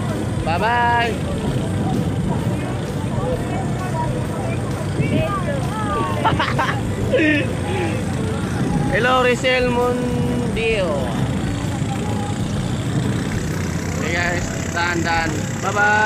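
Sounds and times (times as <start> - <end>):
boat engine rumble: 0.0 - 16.0
people chatting: 0.0 - 16.0.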